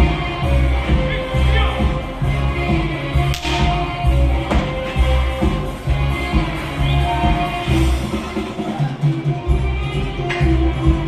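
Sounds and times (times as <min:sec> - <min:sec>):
circus band music: 0:00.0 - 0:11.0
whip crack: 0:03.3 - 0:03.8.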